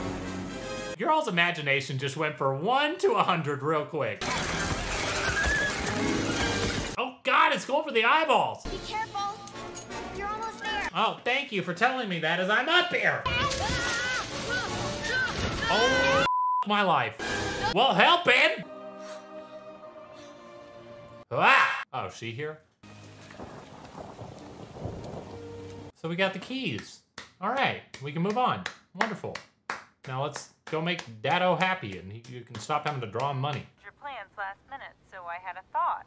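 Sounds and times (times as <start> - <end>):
film score music: 0.0 - 1.0, 17.2 - 21.3
steady rain falling: 22.9 - 25.9.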